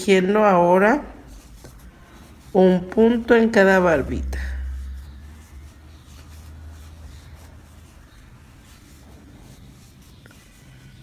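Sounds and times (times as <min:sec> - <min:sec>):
crochet hook rustling yarn: 0:00.0 - 0:11.0
low hum: 0:03.1 - 0:08.7.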